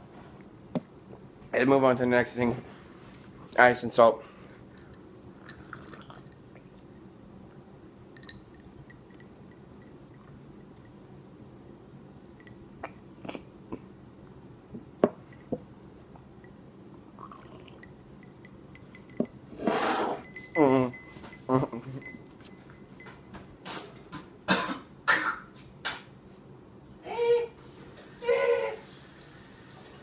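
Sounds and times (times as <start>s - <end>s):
person drinking from a glass: 5.4s - 6.4s, 17.2s - 17.9s.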